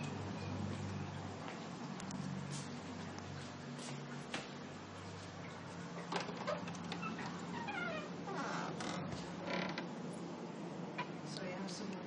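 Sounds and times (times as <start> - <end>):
door hinges creaking: 6.1 - 9.9.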